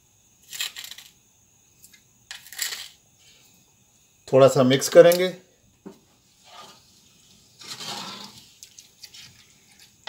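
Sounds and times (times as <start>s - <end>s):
gritty rattle of salt: 0.4s - 3.4s, 6.4s - 10.0s.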